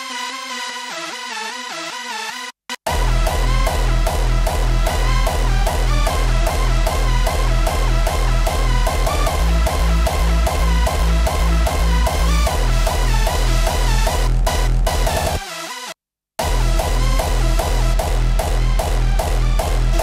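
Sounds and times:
heavy kick drum: 2.9s - 15.4s, 16.4s - 20.0s
synth melody: 2.9s - 15.6s.

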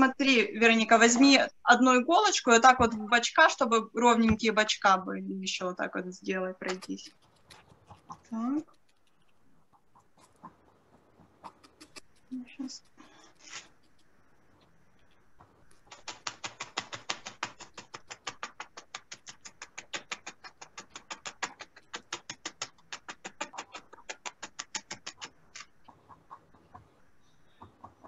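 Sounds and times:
felting needle stabbing into wool: 6.6s - 9.1s.

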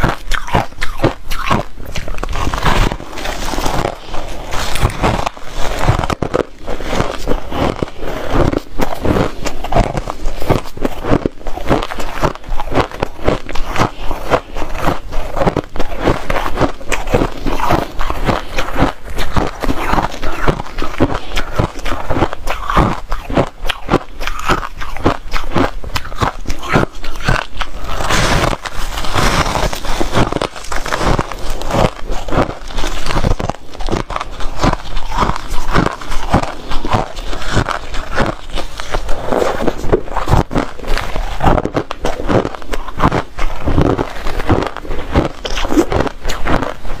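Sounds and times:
chewing shaved ice crunches: 0.0s - 47.0s.

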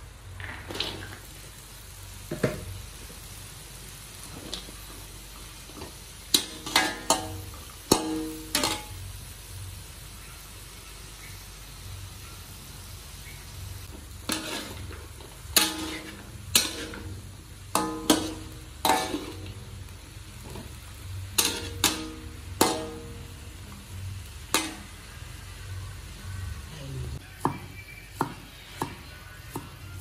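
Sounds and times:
metal spatula scraping a wok: 13.8s - 19.8s, 21.2s - 23.3s.

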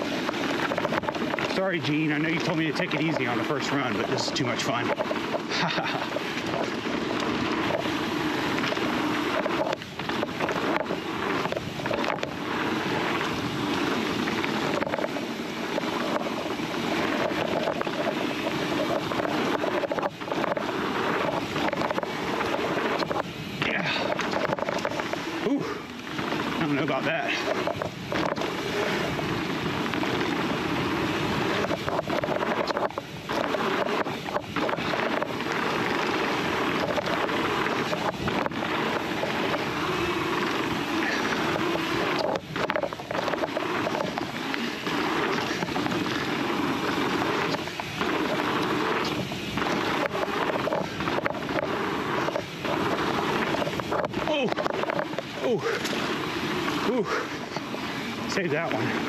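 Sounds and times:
bike knocking and rattling: 0.0s - 59.0s
tyre and wind noise: 0.0s - 59.0s.

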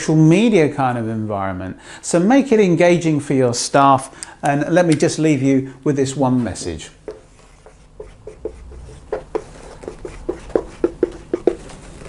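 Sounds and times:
marker squeaking on whiteboard: 7.1s - 12.0s.

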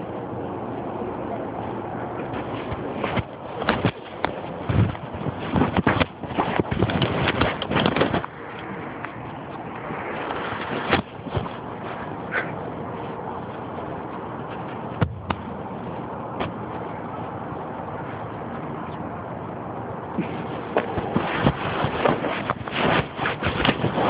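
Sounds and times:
microphone handling noise: 2.3s - 12.1s.

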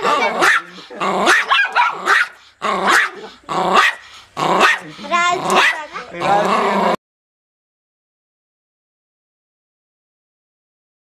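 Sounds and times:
dog barking and growling: 0.0s - 7.0s.

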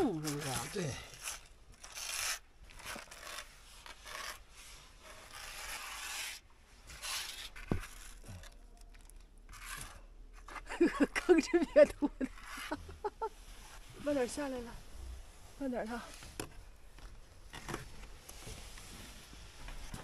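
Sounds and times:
scraper spreading paste on wall: 0.1s - 8.5s, 9.5s - 10.6s, 12.2s - 13.0s.

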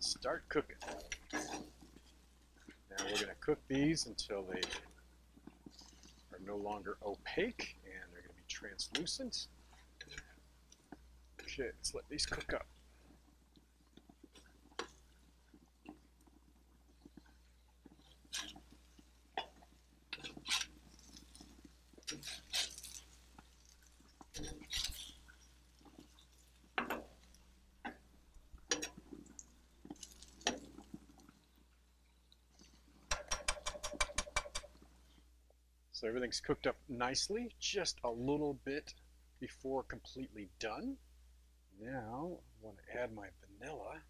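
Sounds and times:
metal spatula scraping on stone: 0.7s - 2.2s, 2.8s - 3.5s, 9.7s - 10.4s, 17.9s - 27.5s.

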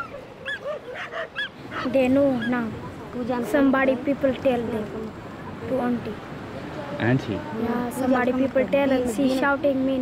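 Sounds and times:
dogs barking and yelping: 0.0s - 2.6s
girl's voice: 7.5s - 10.0s.

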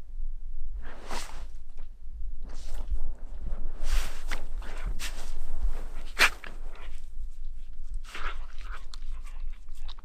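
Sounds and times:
dog crunching through snow: 3.8s - 7.0s.

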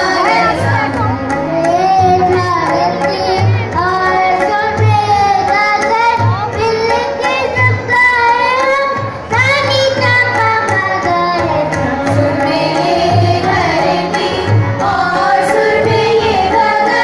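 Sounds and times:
hand drums: 0.0s - 17.0s
children singing: 9.7s - 17.0s.

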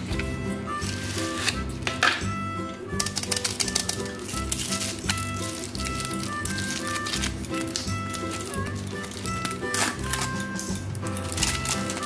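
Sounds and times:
background music: 0.0s - 12.0s
foil wrapper crinkling: 3.0s - 12.0s.

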